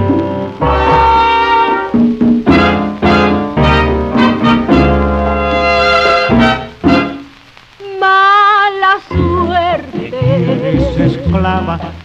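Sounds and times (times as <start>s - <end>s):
bolero band music: 0.0s - 7.6s, 9.0s - 12.0s
record surface noise: 0.0s - 12.0s
person singing: 7.8s - 12.0s.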